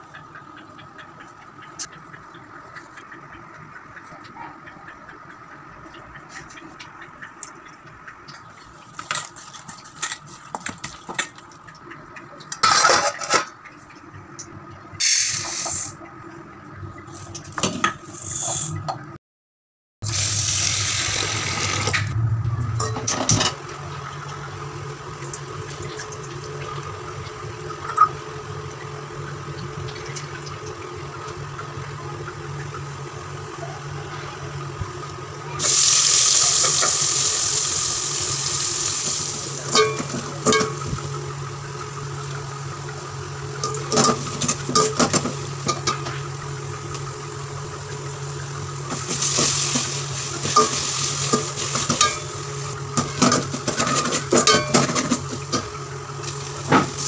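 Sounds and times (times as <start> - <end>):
food sizzling in hot oil: 15.0 - 15.9, 20.0 - 22.2, 35.6 - 42.2, 46.6 - 54.7
low hum: 20.1 - 28.0.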